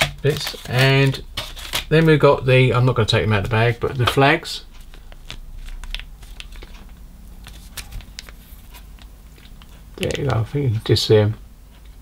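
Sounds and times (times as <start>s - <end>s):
plastic bag crinkling: 0.0s - 10.4s.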